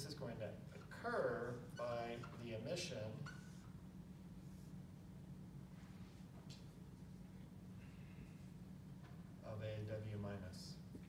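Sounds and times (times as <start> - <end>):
marker squeaking on whiteboard: 0.7 - 4.8.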